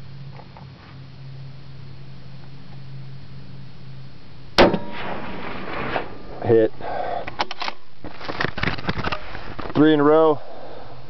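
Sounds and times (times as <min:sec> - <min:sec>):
rifle shot with echo: 0:04.6 - 0:06.4.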